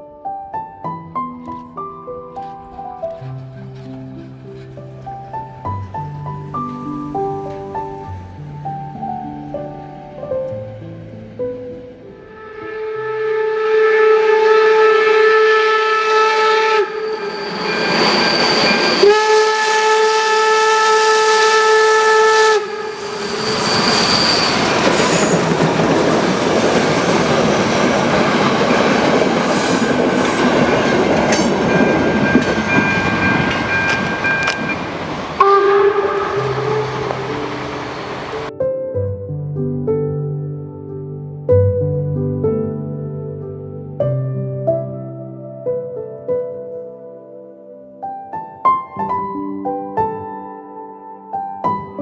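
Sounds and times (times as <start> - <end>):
steam locomotive whistle blasts: 12.3 - 25.5, 29.6 - 38.5
steam train rushing and rattling: 16.8 - 19.4, 22.0 - 38.5.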